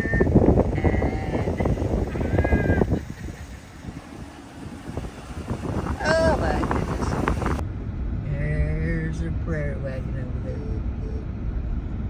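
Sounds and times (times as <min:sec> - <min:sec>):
wind buffeting car window: 0:00.0 - 0:07.8
road rumble: 0:00.0 - 0:12.0.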